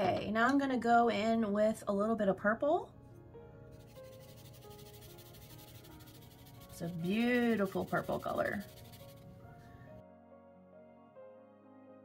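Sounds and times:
soft background music: 0.0s - 12.0s
pencil scratching on paper: 3.8s - 9.3s.

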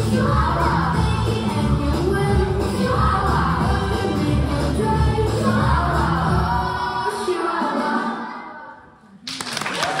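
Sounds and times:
dance music: 0.0s - 8.2s
audience applause: 9.2s - 10.0s.

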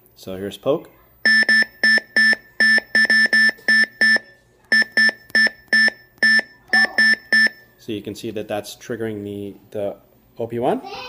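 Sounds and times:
short beeping synth notes: 1.3s - 7.6s.

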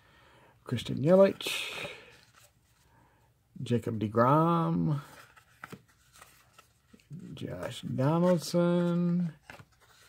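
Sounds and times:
cards rustling and flicking: 4.3s - 10.0s.

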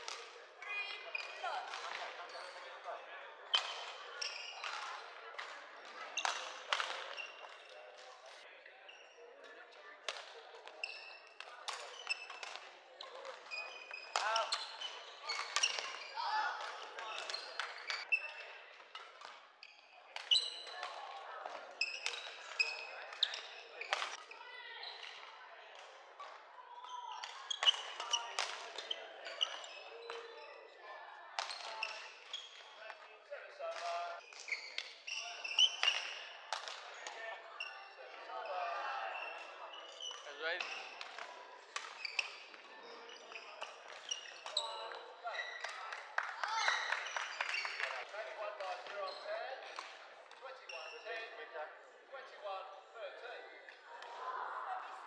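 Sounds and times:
shoes squeaking on wooden floor: 42.0s - 44.7s.

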